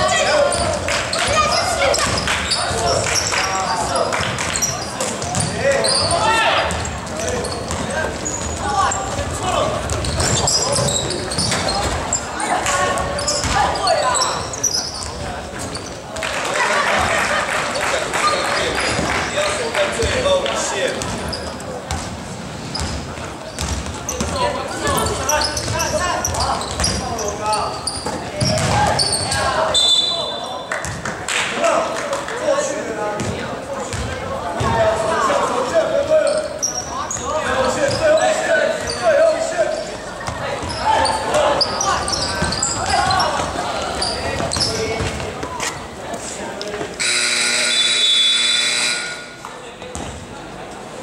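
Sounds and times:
referee whistle blast: 29.7s - 30.4s, 47.0s - 49.3s.

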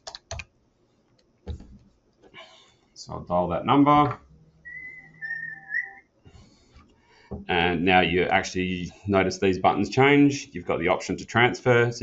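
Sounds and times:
person whistling: 4.7s - 6.0s.

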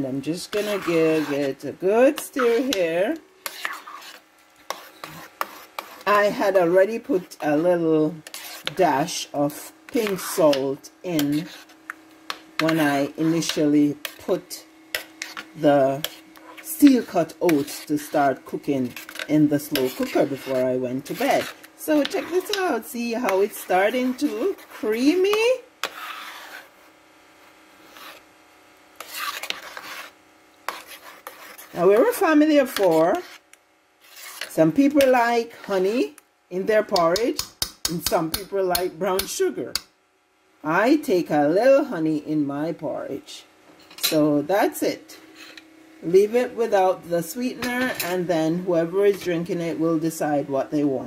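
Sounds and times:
spoon stirring thick oatmeal: 0.4s - 26.8s, 29.0s - 33.4s, 34.0s - 35.9s.

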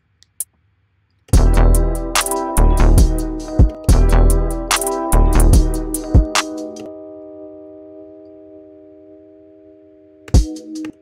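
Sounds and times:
held synth chord: 1.4s - 11.0s.

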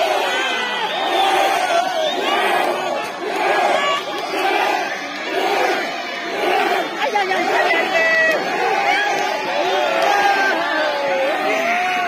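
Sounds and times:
crowd chanting rhythmically: 0.0s - 12.0s
crowd shouting and cheering: 0.0s - 12.0s.

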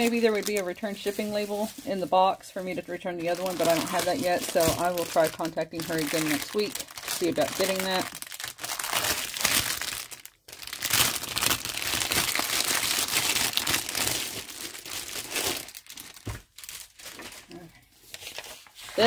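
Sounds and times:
plastic sleeve crinkling: 0.0s - 19.0s.

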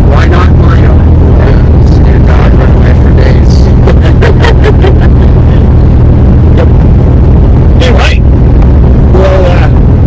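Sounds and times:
vehicle low rumble: 0.0s - 10.0s
man laughing: 3.5s - 5.8s, 6.5s - 6.8s.

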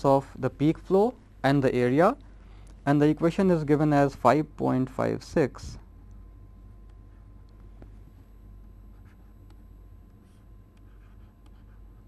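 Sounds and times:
low steady hum: 0.0s - 12.0s
stylus scratching on tablet: 8.8s - 9.5s, 10.2s - 12.0s.

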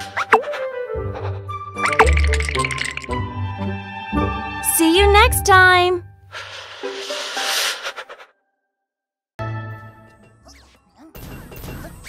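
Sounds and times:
cartoon hissing swish: 6.4s - 8.3s.

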